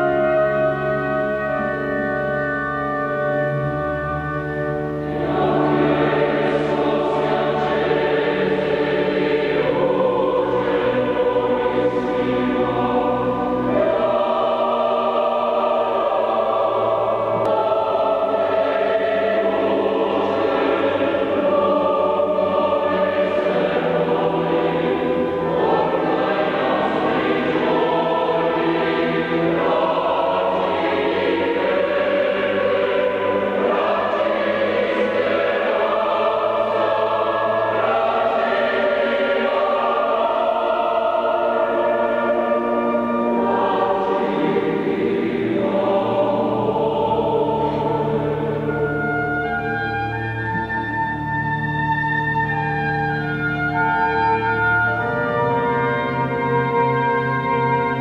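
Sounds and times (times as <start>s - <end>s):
organ accompaniment: 0.0s - 58.0s
mixed choir singing: 5.0s - 51.4s.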